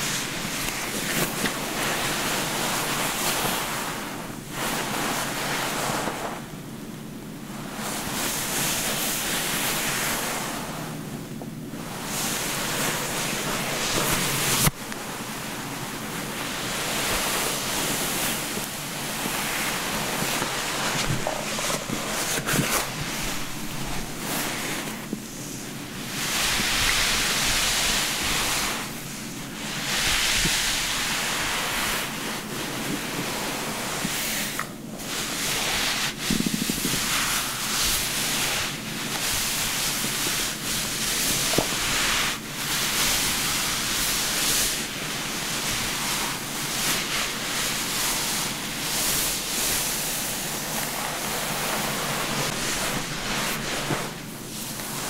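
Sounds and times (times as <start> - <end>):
towel rubbing wet hair: 0.0 - 6.7, 7.4 - 55.0.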